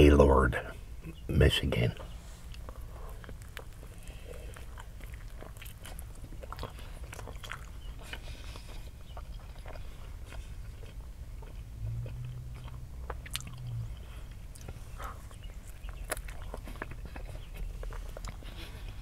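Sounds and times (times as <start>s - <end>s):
person chewing food: 2.0s - 19.0s.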